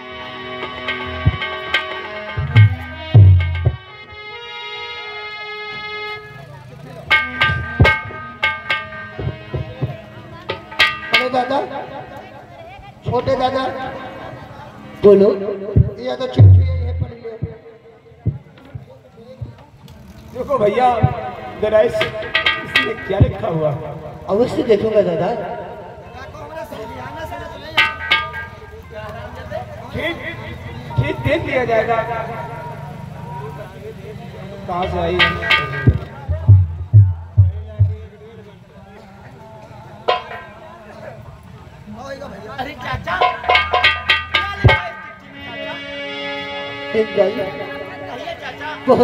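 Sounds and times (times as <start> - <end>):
held note with overtones: 0.0 - 4.5, 7.0 - 12.4, 27.6 - 29.1, 34.8 - 38.2, 43.2 - 49.0
sharp drum strokes: 0.6 - 4.2, 7.1 - 11.9, 15.6 - 19.6, 20.9 - 24.6, 27.7 - 28.9, 34.8 - 38.2, 43.1 - 45.4
faint murmur of voices: 4.0 - 8.2, 9.1 - 22.7
sharp metallic clinks: 35.1 - 38.0.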